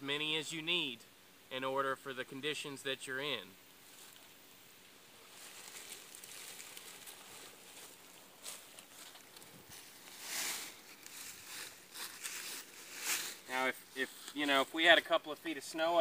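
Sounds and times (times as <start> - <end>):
dry leaves rustling and scuffing: 5.1 - 14.8.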